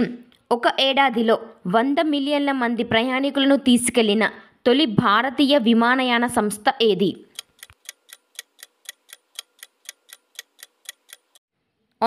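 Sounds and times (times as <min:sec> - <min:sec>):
clock-like ticking: 0:07.2 - 0:11.4.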